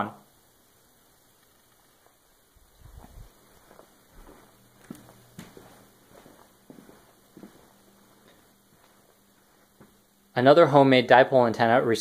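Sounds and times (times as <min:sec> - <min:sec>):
footsteps: 0:01.4 - 0:10.2.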